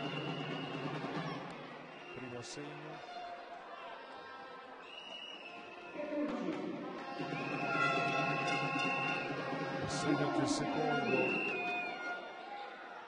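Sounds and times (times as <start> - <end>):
music in arena: 0.0 - 3.4, 5.1 - 13.0.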